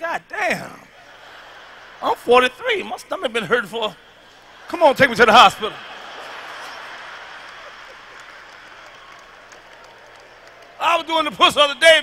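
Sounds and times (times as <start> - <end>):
audience laughing: 0.4 - 12.0
audience applauding: 3.4 - 12.0.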